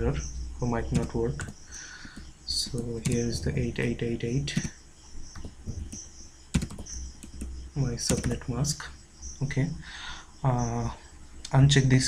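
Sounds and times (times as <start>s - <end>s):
computer keyboard typing: 0.8s - 8.5s.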